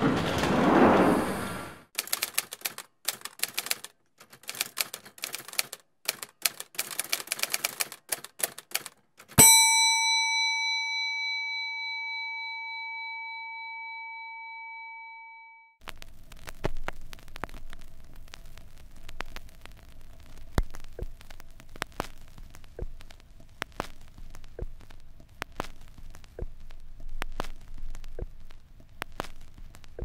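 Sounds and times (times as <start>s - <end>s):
typewriter keys clacking: 2.0s - 9.4s
counter bell ringing: 9.4s - 15.8s
vinyl record crackle and hiss: 15.8s - 30.0s.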